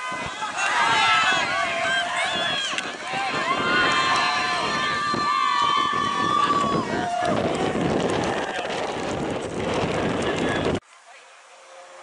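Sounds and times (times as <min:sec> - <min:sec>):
long drawn-out yell: 0:00.0 - 0:08.8
spectators shouting and cheering: 0:00.0 - 0:10.8.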